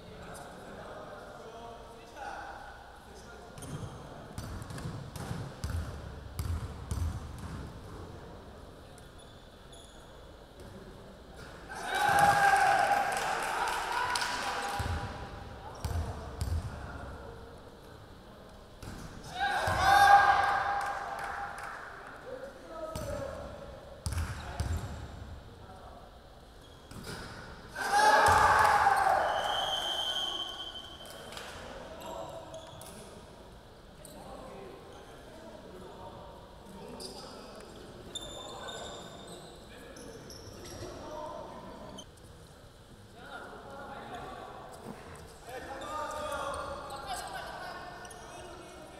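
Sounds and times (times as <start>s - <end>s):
people shouting: 19.3s - 20.8s, 27.8s - 29.4s.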